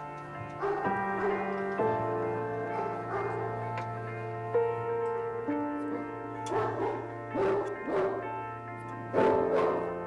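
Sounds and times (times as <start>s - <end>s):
background music with held tones: 0.0s - 10.0s
dogs barking deeply: 0.4s - 4.3s, 6.0s - 10.0s.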